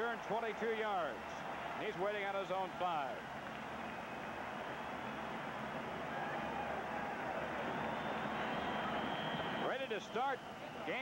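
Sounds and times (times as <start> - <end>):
stadium crowd cheering and shouting: 0.0 - 11.0.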